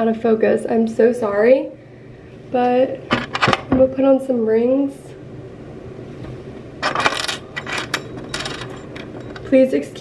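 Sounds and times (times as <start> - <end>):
metal rings clinking: 6.8 - 9.8.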